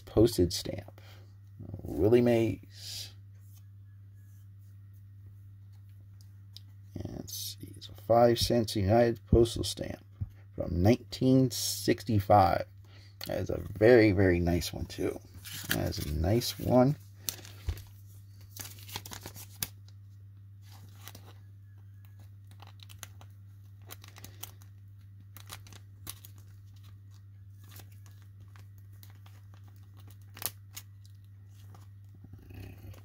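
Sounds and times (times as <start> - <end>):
plastic crinkling and clicking: 22.0 - 31.9.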